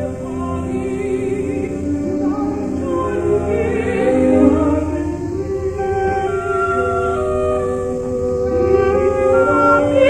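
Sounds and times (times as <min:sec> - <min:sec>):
opera chorus singing: 0:00.0 - 0:10.0.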